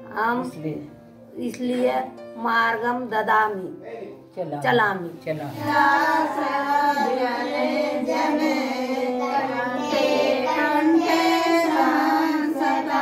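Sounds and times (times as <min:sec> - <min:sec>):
women and girls singing: 0:05.6 - 0:13.0.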